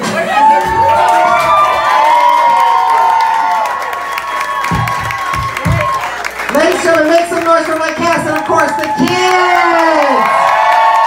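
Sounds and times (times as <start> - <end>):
crowd cheering and whooping: 0.0 - 7.1, 7.9 - 11.0
people clapping: 0.0 - 11.0.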